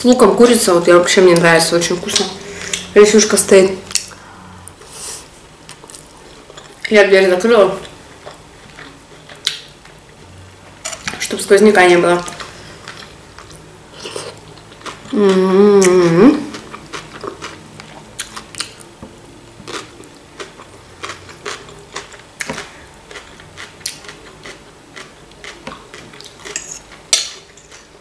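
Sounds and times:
person chewing food: 5.7 - 6.8, 7.8 - 10.0, 12.4 - 18.9, 19.6 - 28.0.

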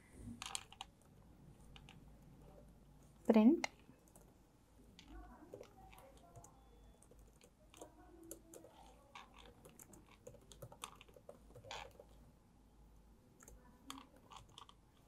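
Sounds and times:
laptop keyboard typing: 0.4 - 2.7, 3.3 - 4.4, 5.0 - 12.2, 13.4 - 15.0.

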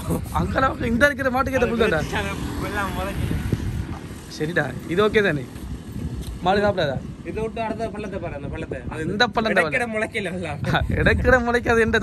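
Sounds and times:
motor vehicle passing: 0.0 - 7.8
man talking: 6.4 - 12.0.

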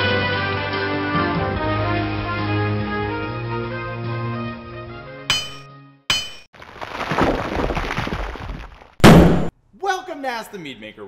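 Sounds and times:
sharp ringing clinks: 5.3 - 6.5
loud hit: 9.0 - 9.5.

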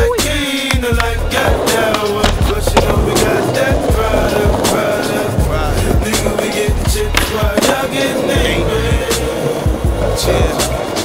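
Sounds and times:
hip-hop music: 0.0 - 11.0
skateboard clacks: 0.0 - 11.0
skateboard wheels rolling: 0.0 - 11.0.

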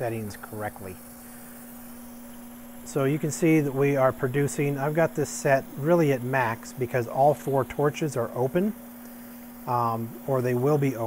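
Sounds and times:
generator hum: 0.0 - 11.0
torch hiss: 0.0 - 11.0.

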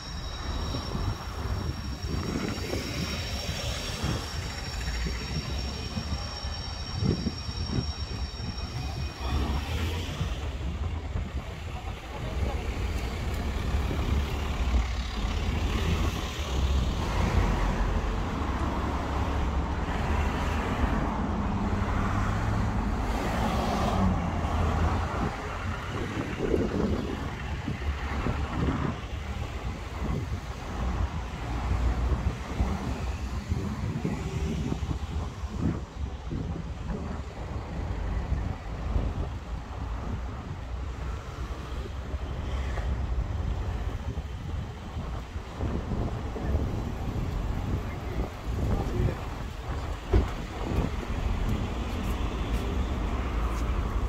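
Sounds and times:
high steady whine: 0.0 - 15.6
road traffic rumble: 0.0 - 54.0.

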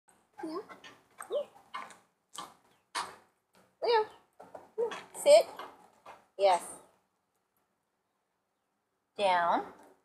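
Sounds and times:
woman calling a dog: 3.8 - 4.2.

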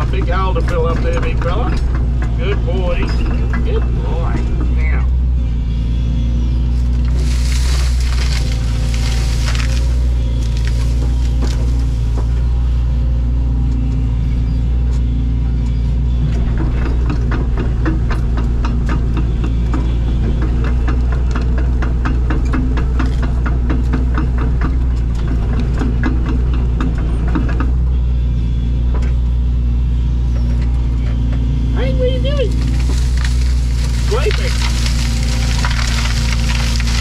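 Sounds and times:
tracks clattering: 0.0 - 5.8, 6.6 - 13.1, 15.8 - 37.0
excavator diesel engine running: 0.0 - 37.0.

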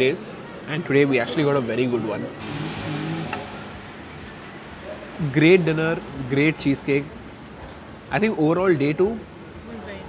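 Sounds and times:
vehicle passing: 2.4 - 5.0.

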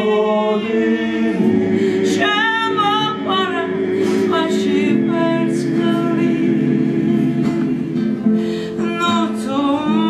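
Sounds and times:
voices singing in close harmony: 0.0 - 10.0.

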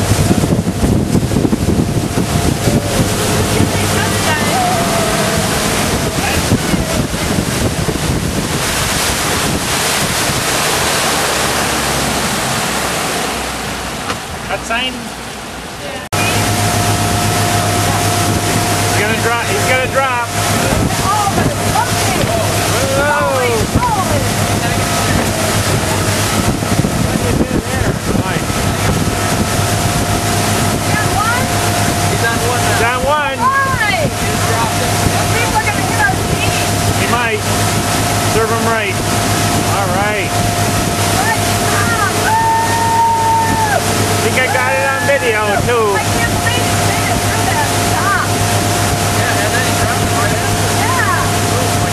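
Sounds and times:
wind on microphone: 0.0 - 14.0, 16.1 - 51.9
motorboat engine running: 0.0 - 51.9
people yelling: 2.6 - 7.2, 41.1 - 48.3.

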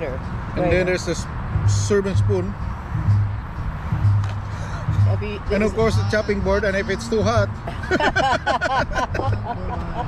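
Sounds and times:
music with low bass note: 0.6 - 10.0.

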